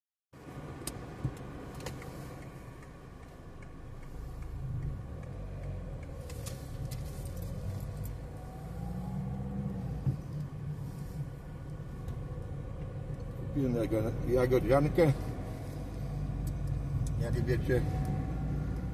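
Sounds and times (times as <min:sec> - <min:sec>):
car engine from inside cabin: 0:00.4 - 0:18.9.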